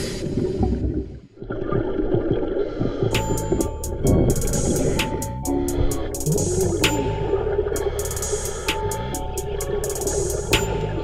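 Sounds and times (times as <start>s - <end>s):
underwater bubbling: 0.0s - 11.0s.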